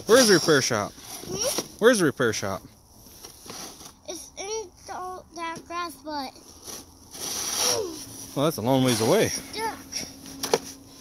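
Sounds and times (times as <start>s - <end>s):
child making high-pitched syllables: 9.5s - 9.9s.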